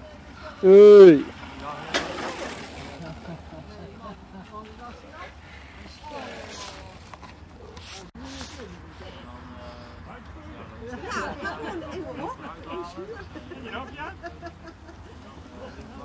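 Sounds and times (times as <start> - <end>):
distant voices: 0.0 - 16.0.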